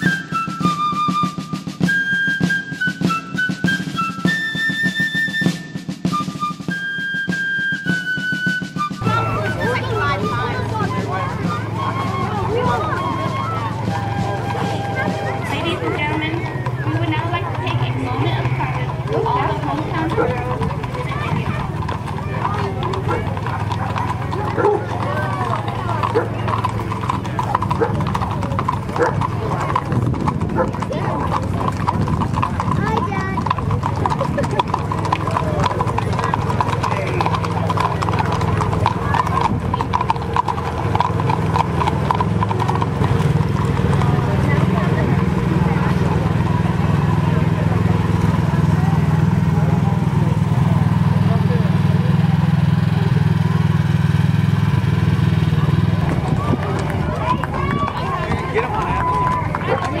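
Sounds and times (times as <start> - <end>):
horse hooves clip-clopping on asphalt: 0.0 - 60.0
vehicle engine humming: 0.0 - 60.0.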